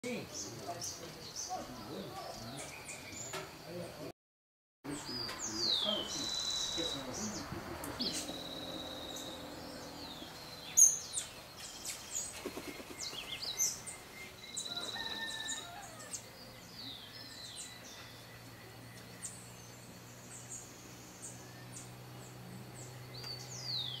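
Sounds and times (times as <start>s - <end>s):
birds chirping: 0.0s - 4.1s, 4.9s - 24.0s
buzzy bird trill: 5.5s - 16.2s.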